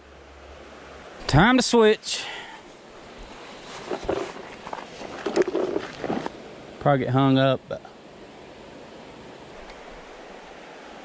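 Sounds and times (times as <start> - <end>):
flowing creek water: 0.0 - 11.0
footsteps on gravel: 3.6 - 6.4.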